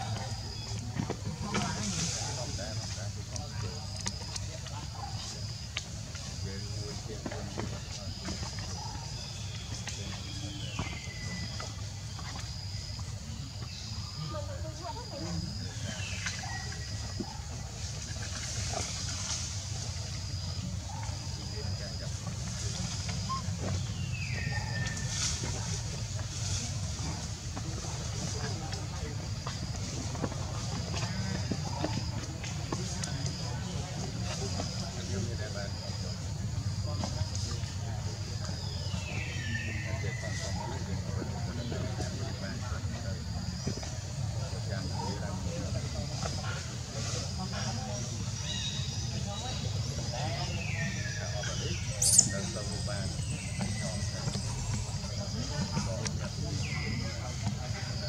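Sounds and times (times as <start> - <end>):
indistinct background voices: 0.0 - 58.0.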